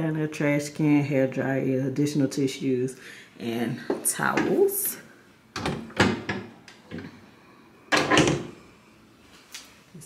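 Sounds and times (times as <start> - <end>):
wooden cabinet doors knocking: 5.6 - 6.5.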